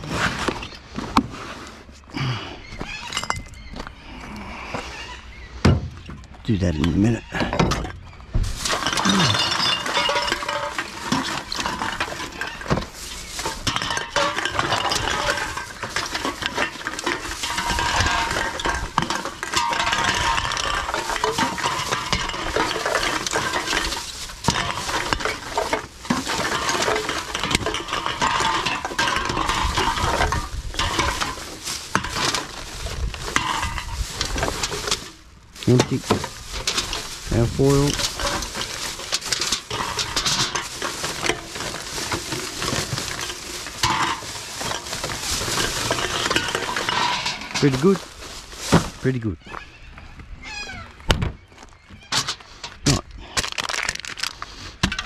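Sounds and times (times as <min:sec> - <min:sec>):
aluminium cans clinking and rattling: 0:06.6 - 0:49.3, 0:52.1 - 0:55.0
plastic bag crinkling: 0:08.4 - 0:49.4, 0:52.9 - 0:54.8.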